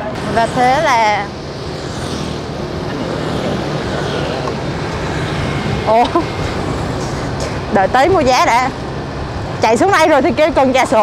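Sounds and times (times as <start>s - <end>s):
motorbike riding rumble: 0.0s - 11.0s.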